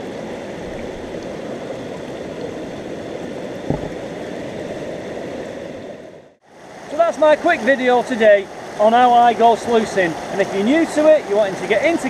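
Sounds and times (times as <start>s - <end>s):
stream running water: 0.0s - 12.0s
soft knock: 3.7s - 4.0s.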